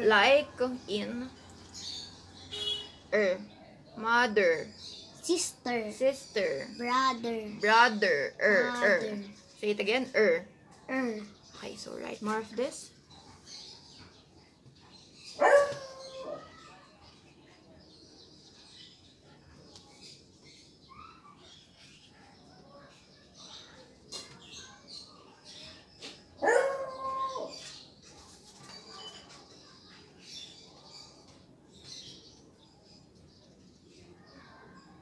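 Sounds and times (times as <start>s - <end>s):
dog barking: 15.4s - 16.6s, 26.4s - 27.5s.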